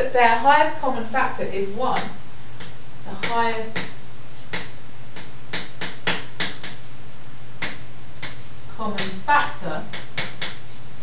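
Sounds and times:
steady low hum: 0:00.0 - 0:11.0
chalk tapping and scratching: 0:01.9 - 0:11.0.

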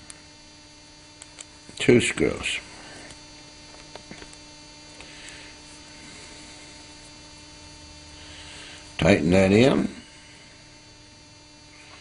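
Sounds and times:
electrical hum: 0:00.0 - 0:12.0.

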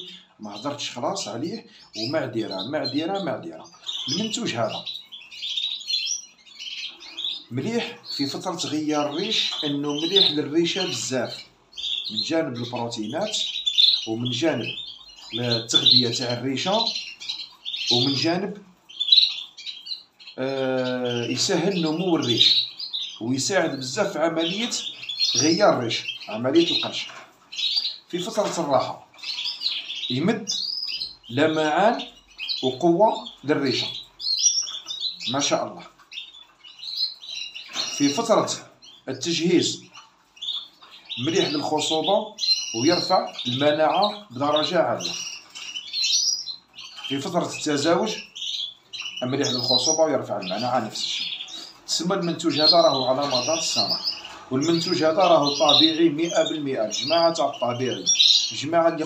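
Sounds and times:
canaries chirping: 0:00.0 - 0:59.0.

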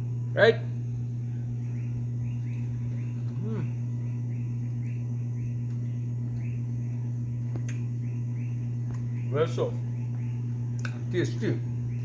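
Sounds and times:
insect chirping faintly: 0:00.0 - 0:12.0
low electrical hum: 0:00.0 - 0:12.0.

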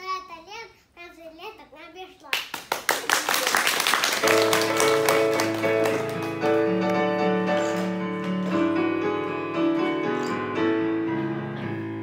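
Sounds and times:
child reciting: 0:00.0 - 0:02.4
audience clapping: 0:02.3 - 0:08.7
keyboard music: 0:04.2 - 0:12.0.

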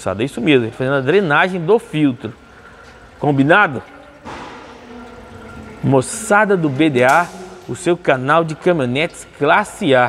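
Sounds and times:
fluid draining into a pan: 0:00.2 - 0:10.0.

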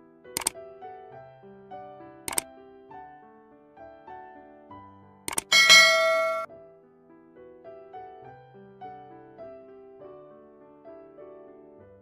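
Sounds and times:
soft piano music: 0:00.0 - 0:12.0
double-click sound effect: 0:05.3 - 0:06.5.

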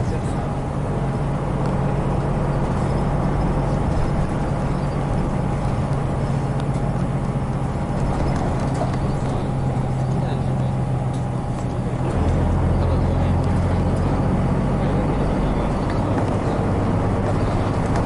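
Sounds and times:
bus diesel engine droning: 0:00.0 - 0:18.0.

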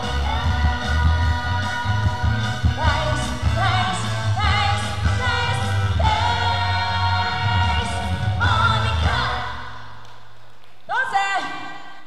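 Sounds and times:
pop backing track with bass: 0:00.0 - 0:09.6.

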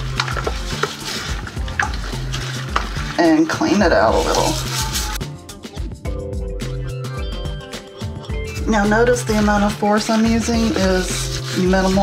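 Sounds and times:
toilet brush scrubbing bowl: 0:00.0 - 0:05.2, 0:08.4 - 0:12.0
background music with bass: 0:00.0 - 0:12.0.

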